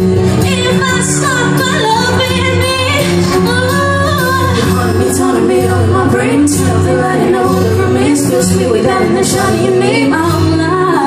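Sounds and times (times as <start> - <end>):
loud pop backing music: 0.0 - 11.0
woman singing into a microphone: 0.0 - 11.0.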